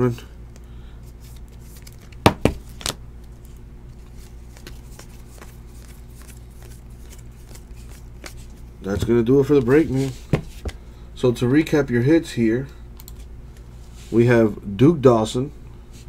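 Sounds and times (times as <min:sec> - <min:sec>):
steady low hum: 0:00.0 - 0:16.0
cards rustling: 0:01.0 - 0:10.8
trading cards tapping: 0:01.8 - 0:03.0.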